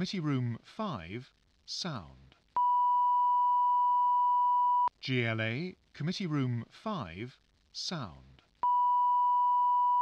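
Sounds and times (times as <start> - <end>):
recorded spoken ident: 0.0 - 2.4, 4.9 - 8.4.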